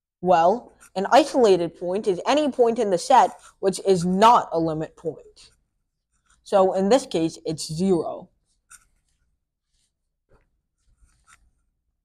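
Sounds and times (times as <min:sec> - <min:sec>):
marker scratching on whiteboard: 0:00.5 - 0:06.8, 0:08.3 - 0:11.9.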